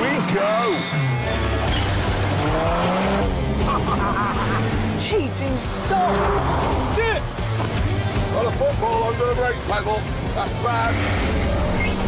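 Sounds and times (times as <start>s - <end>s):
music: 0.0s - 12.0s
car engine revving: 1.7s - 7.4s.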